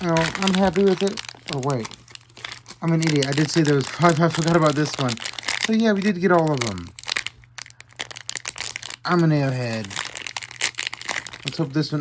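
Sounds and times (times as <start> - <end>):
foil wrapper crinkling and tearing: 0.0 - 12.0.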